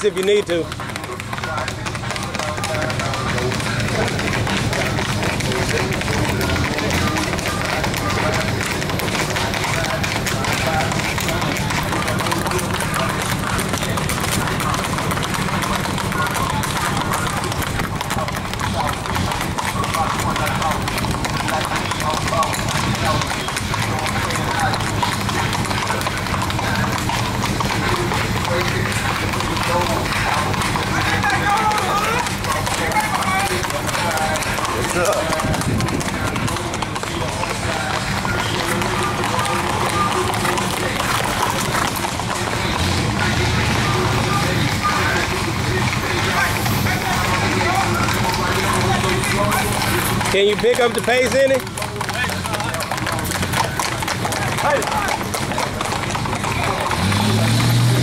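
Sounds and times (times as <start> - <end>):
horse hooves clip-clopping on pavement: 0.0 - 58.0
voices: 0.0 - 58.0.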